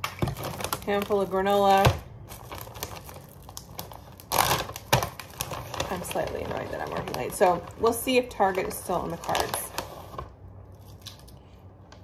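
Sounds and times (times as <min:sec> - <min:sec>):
plastic snack packet crinkling: 0:00.0 - 0:12.0.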